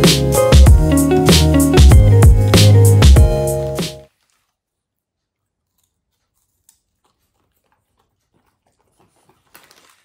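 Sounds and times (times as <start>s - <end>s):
dog chewing crunchy snack: 5.5s - 10.0s.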